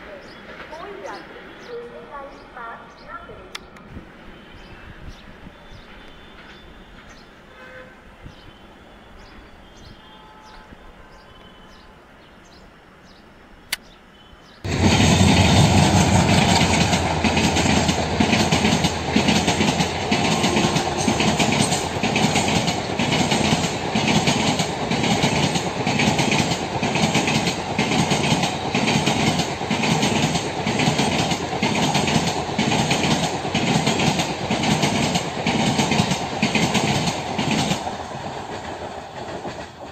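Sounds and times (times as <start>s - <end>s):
train wheels clattering over rail joints: 14.7s - 39.9s.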